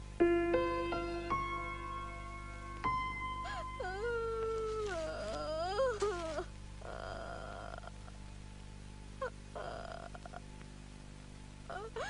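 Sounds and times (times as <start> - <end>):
high wavering wailing voice: 3.5 - 7.9.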